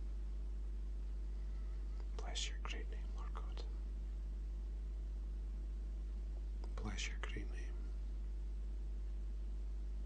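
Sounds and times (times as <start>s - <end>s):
steady low hum: 0.0s - 10.0s
man whispering: 2.0s - 3.8s, 6.6s - 8.0s.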